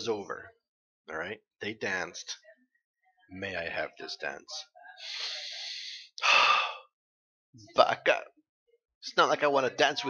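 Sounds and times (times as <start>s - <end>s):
man sighing: 5.1s - 6.8s.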